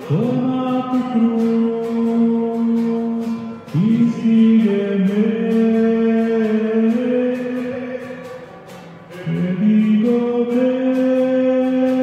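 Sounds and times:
hymn singing: 0.0s - 12.0s
strummed guitar: 0.0s - 12.0s.

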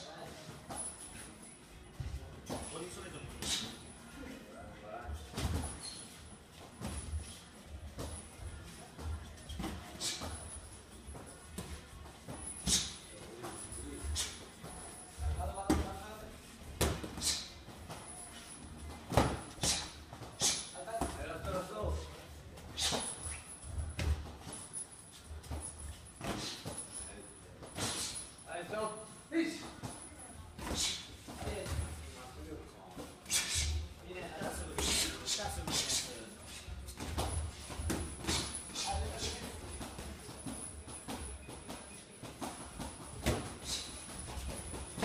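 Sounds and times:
footwork on ring canvas: 0.0s - 45.0s
voices in a gym: 0.0s - 45.0s.

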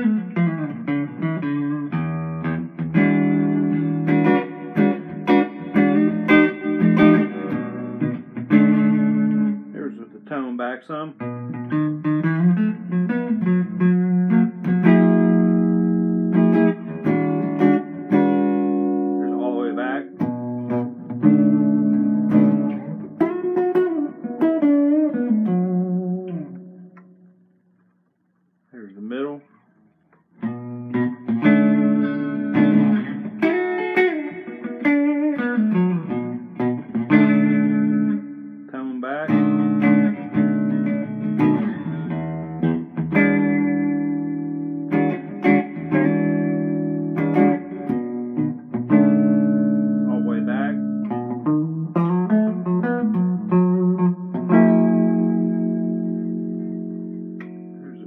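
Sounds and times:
electric guitar with string bends: 0.0s - 28.0s, 28.8s - 58.0s.

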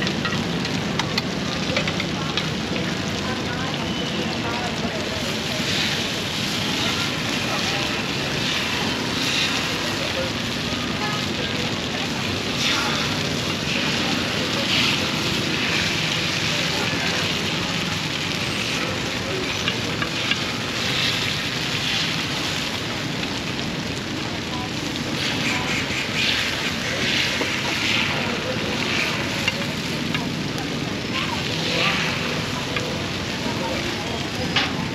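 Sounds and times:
murmur of voices: 0.0s - 34.9s
rice cakes sizzling in molds: 0.0s - 34.9s
street traffic: 0.0s - 34.9s.

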